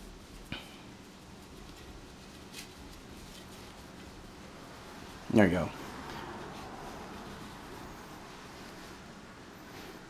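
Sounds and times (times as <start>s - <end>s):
rustling of cords being knotted: 0.0s - 9.1s
low room hum: 0.0s - 10.0s.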